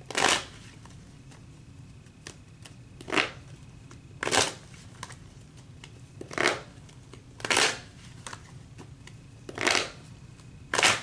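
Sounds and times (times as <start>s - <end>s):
cards being shuffled: 0.1s - 11.0s.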